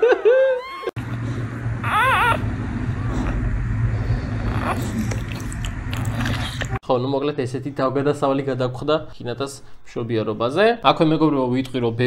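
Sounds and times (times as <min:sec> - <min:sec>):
steady low hum: 0:00.9 - 0:06.8
puppy whimpering: 0:01.8 - 0:02.4.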